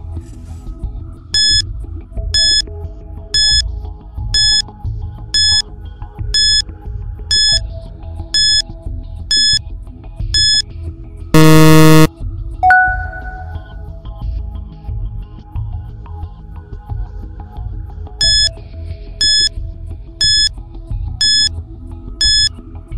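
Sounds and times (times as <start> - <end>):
loud buzzer: 1.4 - 1.6, 2.4 - 2.6, 3.4 - 3.6, 4.4 - 4.6, 5.4 - 5.6, 6.4 - 6.6, 7.3 - 7.6, 8.4 - 8.6, 9.3 - 9.6, 10.4 - 10.6, 11.4 - 13.6, 18.2 - 18.5, 19.2 - 19.5, 20.2 - 20.5, 21.2 - 21.5, 22.2 - 22.5
short high beeps: 1.4 - 1.6, 2.4 - 2.6, 3.4 - 3.6, 4.4 - 4.6, 5.4 - 5.6, 6.4 - 6.6, 7.3 - 7.6, 8.4 - 8.6, 9.3 - 9.6, 10.4 - 10.6, 11.4 - 13.8, 18.2 - 18.5, 19.2 - 19.5, 20.2 - 20.5, 21.2 - 21.5, 22.2 - 22.5.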